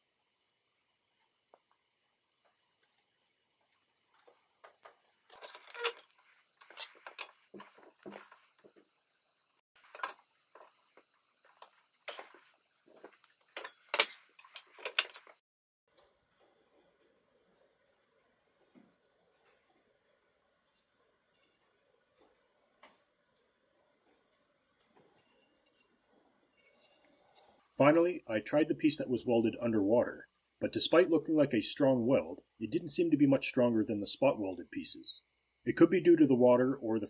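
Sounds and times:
pliers clinking on metal sheet: 0:13.6 - 0:15.4.

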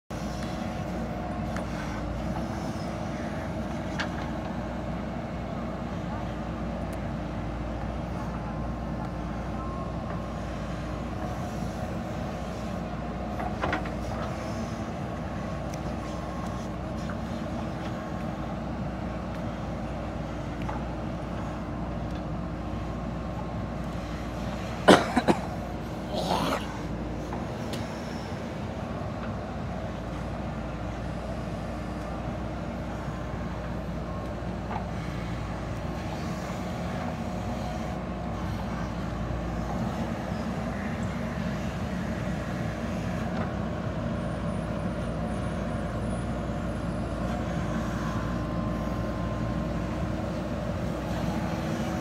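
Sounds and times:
diesel engine running under load: 0:00.1 - 0:52.0.

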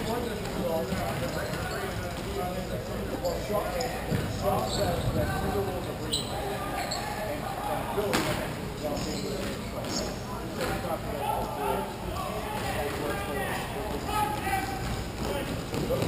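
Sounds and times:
distant players' voices: 0:00.0 - 0:16.0.

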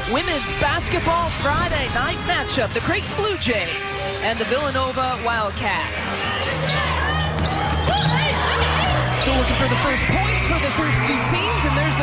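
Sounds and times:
shoe squeaks: 0:06.3 - 0:09.3.

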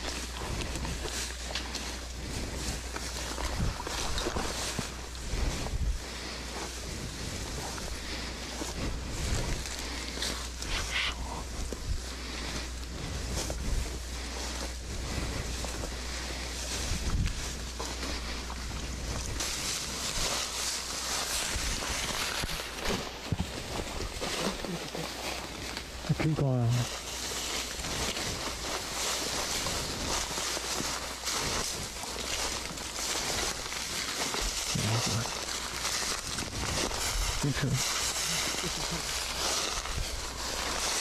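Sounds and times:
rustle of tall grass: 0:00.0 - 0:41.0
wind buffeting microphone: 0:03.3 - 0:06.0.

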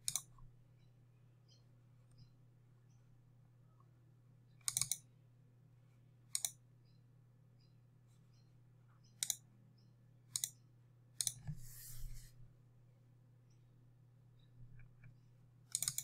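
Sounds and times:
computer mouse clicks: 0:00.0 - 0:00.4, 0:04.6 - 0:05.1, 0:06.3 - 0:06.6, 0:09.0 - 0:09.4, 0:10.3 - 0:10.6, 0:11.2 - 0:12.0, 0:14.8 - 0:16.0
faint steady hum: 0:00.0 - 0:16.0.

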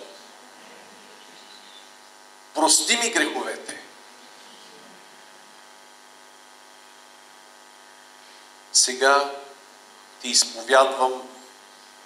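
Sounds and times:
electrical mains hum and hiss: 0:00.0 - 0:12.0.

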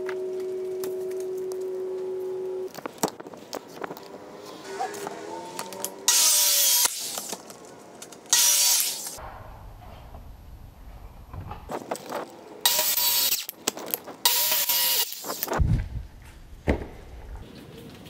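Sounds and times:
circular saw cutting plastic: 0:04.7 - 0:07.4, 0:08.3 - 0:09.2, 0:12.6 - 0:13.6, 0:14.2 - 0:15.6.

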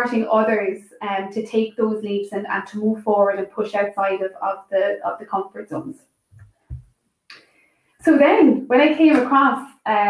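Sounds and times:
person talking: 0:00.0 - 0:05.9, 0:08.0 - 0:10.0
soft deep thumps: 0:06.3 - 0:06.9.

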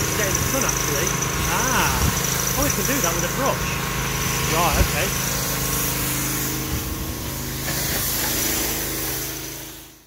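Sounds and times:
pressure washer engine running: 0:00.0 - 0:10.0
high hiss: 0:04.2 - 0:10.0.

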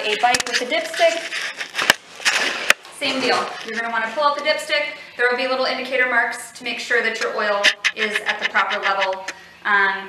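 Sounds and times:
camera handling rustling: 0:00.0 - 0:02.8
sharp clicks: 0:07.2 - 0:09.4.

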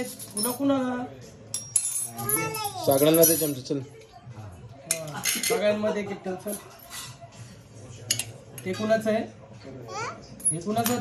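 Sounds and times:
spoons clinking on steel plates: 0:00.0 - 0:00.8, 0:01.5 - 0:03.7, 0:04.9 - 0:05.8, 0:08.0 - 0:09.1, 0:10.4 - 0:11.0.

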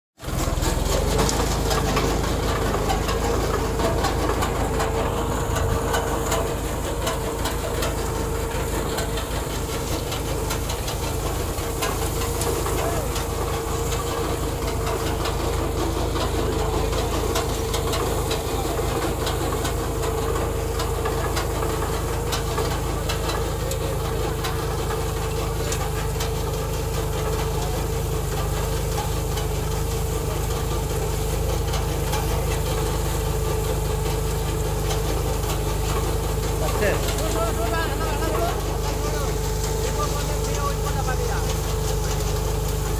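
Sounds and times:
digger rattling: 0:00.2 - 0:42.9
tractor engine under load: 0:00.2 - 0:42.9.

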